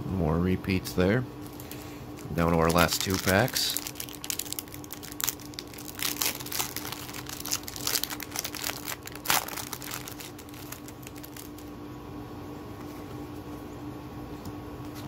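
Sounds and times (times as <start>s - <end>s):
foil card pack tearing and crinkling: 1.4s - 11.7s.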